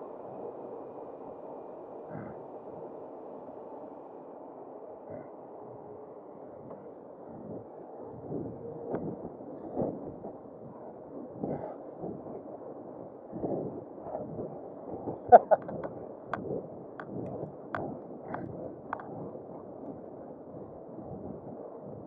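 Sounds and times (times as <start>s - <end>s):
wind noise: 2.1s - 2.9s, 5.1s - 22.0s.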